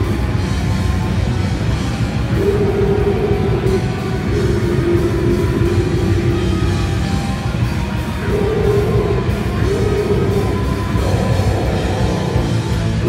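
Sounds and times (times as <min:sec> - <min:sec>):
death metal band playing: 0:00.0 - 0:13.0
fast drumming: 0:02.4 - 0:13.0.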